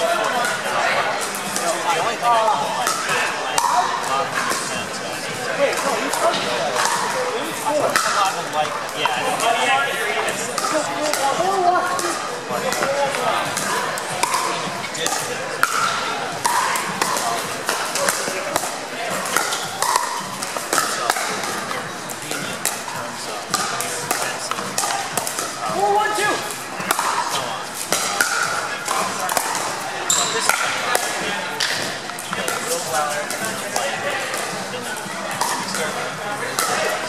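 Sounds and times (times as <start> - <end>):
murmur of spectators: 0.0 - 37.0
paddles hitting plastic ball: 10.3 - 35.9.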